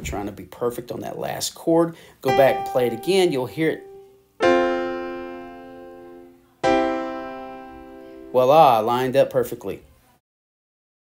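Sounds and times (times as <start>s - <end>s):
piano chords: 2.3s - 8.9s.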